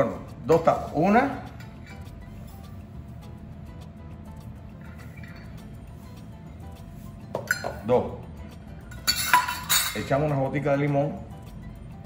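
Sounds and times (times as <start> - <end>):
cups clattering set down: 7.3 - 7.8, 8.9 - 10.1
metal cups clinking on saucepan: 7.3 - 7.9, 8.9 - 10.3.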